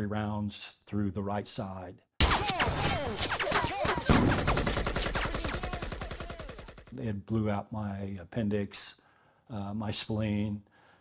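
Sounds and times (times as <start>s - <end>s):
loud gunshot: 2.2s - 6.8s.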